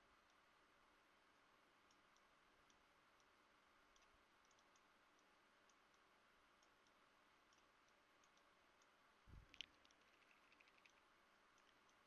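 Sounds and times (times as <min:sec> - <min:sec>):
faint clicks: 0:01.8 - 0:12.0.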